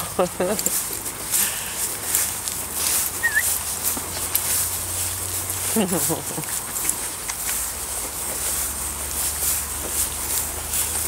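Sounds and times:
man laughing: 0.0 - 0.8, 5.7 - 6.8
footsteps swishing through grass: 0.3 - 11.0
short high chirp: 3.2 - 3.6.

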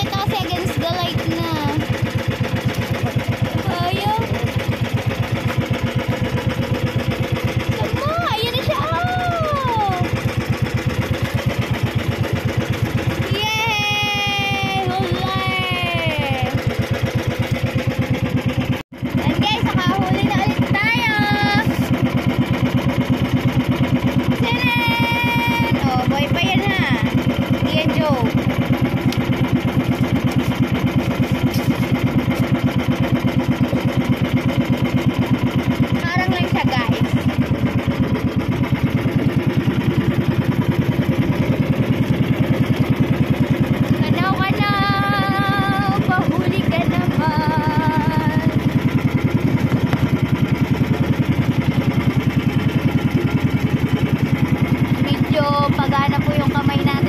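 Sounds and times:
boat engine pulsing: 0.0 - 57.0.

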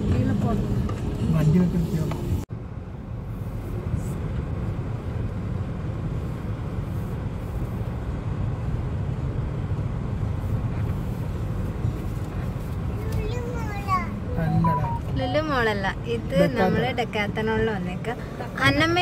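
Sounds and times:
car engine and tyres rumbling: 0.0 - 19.0
person speaking: 14.3 - 15.4.

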